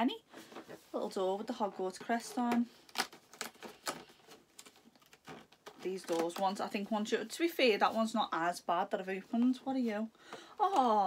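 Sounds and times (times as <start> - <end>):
cardboard scratchy clicks and crackles: 1.8 - 6.8.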